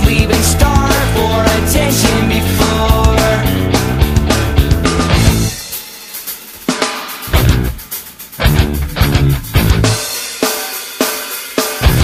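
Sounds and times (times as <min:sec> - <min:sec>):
drum hit: 0:00.0 - 0:10.6
rock band playing: 0:00.0 - 0:12.0.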